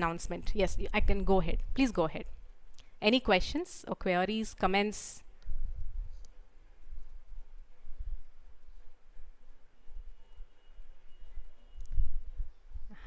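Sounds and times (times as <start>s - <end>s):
faint thin tone: 8.8s - 12.9s.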